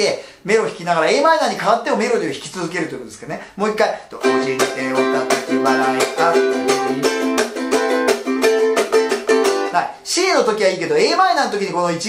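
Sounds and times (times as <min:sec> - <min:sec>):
ukulele strummed with melody: 0:04.2 - 0:09.8.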